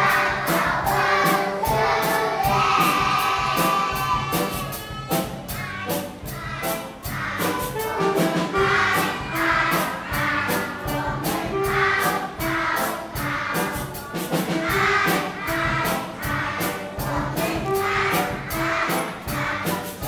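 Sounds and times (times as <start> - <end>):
young children singing: 0.0 - 20.0.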